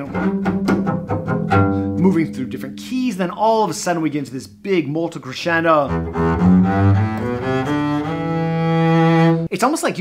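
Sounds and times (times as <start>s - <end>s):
bowed double bass: 0.0s - 4.6s, 5.2s - 9.5s.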